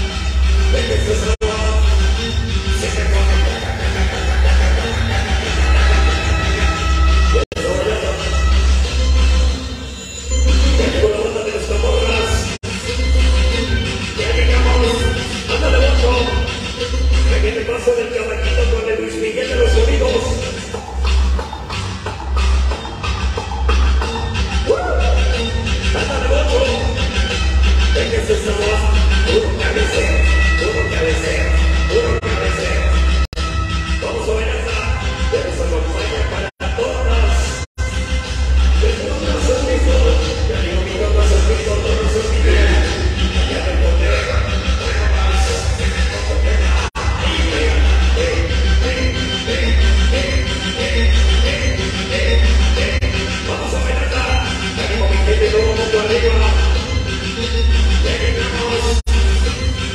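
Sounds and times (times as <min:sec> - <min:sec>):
dance music with heavy bass: 0:00.0 - 0:59.9.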